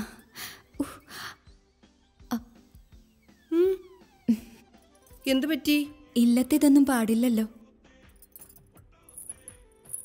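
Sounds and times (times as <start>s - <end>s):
quiet background music: 0.0s - 10.0s
metallic clicks and clinks: 8.2s - 10.0s.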